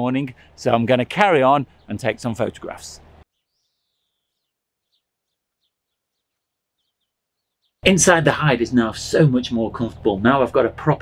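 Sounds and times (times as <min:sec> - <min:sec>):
distant bird calls: 0:00.0 - 0:08.1.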